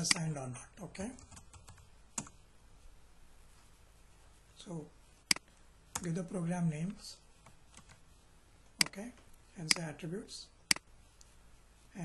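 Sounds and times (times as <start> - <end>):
computer keyboard typing: 1.2 - 2.3.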